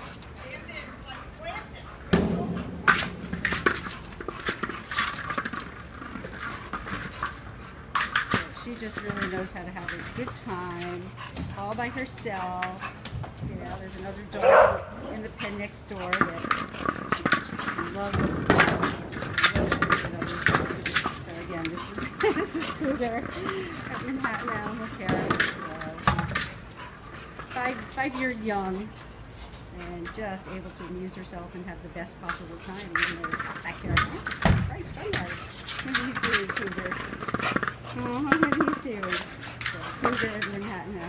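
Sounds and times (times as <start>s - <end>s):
ball knocks and scrapes: 2.1s - 13.8s, 15.4s - 22.2s, 32.2s - 40.7s
plastic ball bumping on concrete: 2.1s - 26.8s, 29.9s - 30.5s, 32.0s - 41.0s
dog scuffling: 2.8s - 31.6s, 32.2s - 41.0s.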